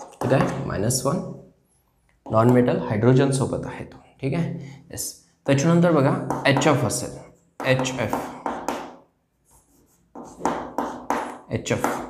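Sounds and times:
chalk strokes on a chalkboard: 9.4 - 11.4.

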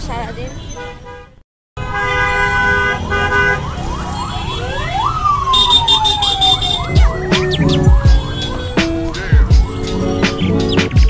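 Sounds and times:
street traffic: 0.0 - 11.0
vehicle horns honking: 0.5 - 3.7, 5.5 - 7.0, 8.1 - 9.3
emergency siren wailing: 2.2 - 10.3
low thumps: 6.9 - 11.0.

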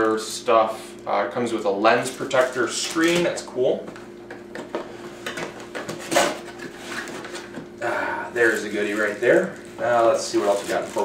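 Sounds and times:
packaging rustling: 1.9 - 3.4, 8.4 - 11.0.

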